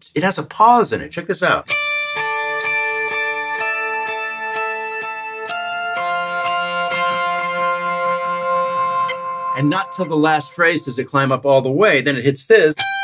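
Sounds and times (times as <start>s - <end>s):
overdriven electric guitar melody: 1.6s - 11.3s, 12.8s - 13.0s.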